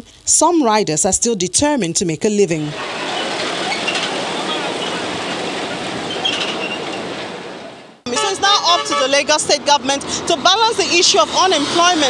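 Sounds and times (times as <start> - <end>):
road traffic: 2.7 - 12.0.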